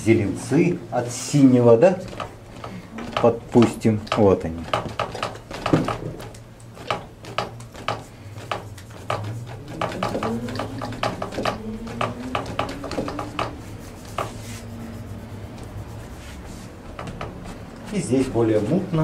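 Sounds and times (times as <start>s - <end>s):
brush dabbing on canvas: 8.0s - 19.0s.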